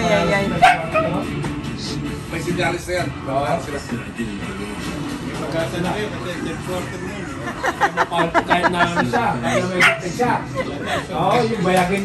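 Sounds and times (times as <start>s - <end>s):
television music: 0.0s - 12.0s
dog barking and yelping: 0.6s - 1.2s, 9.8s - 10.2s.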